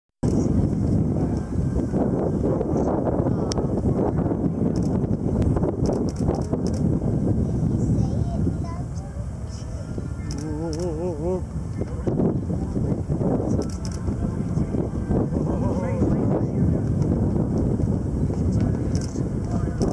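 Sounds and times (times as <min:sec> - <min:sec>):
jet airliner rumble: 0:00.2 - 0:19.9
onlookers' voices: 0:00.2 - 0:19.9.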